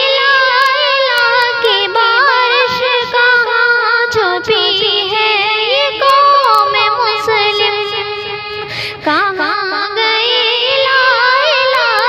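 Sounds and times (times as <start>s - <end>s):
high voice singing ornamented melody: 0.0s - 12.0s.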